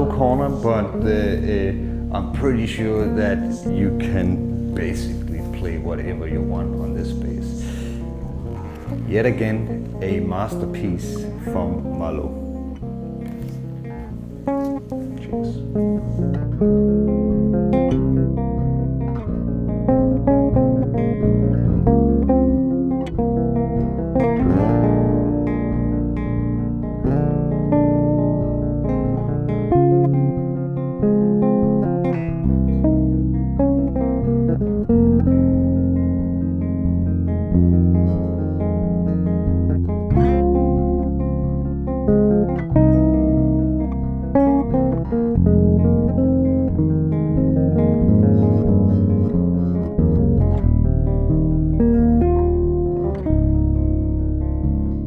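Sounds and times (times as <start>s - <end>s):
electric bass played fingerstyle: 0.0s - 55.0s.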